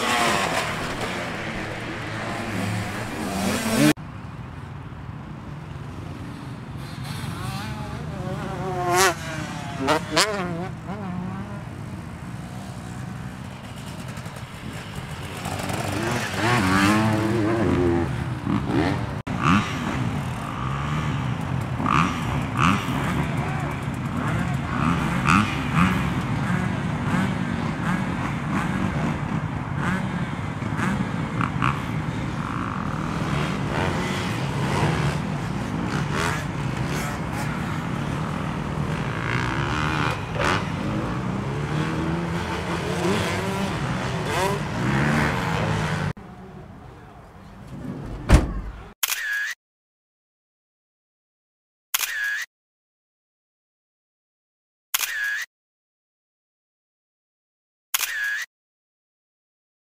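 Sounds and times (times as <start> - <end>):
dirt bike revving: 0.0 - 4.0, 6.3 - 46.2
dirt bike engines running: 0.0 - 49.0
sharp clicks: 58.0 - 58.5.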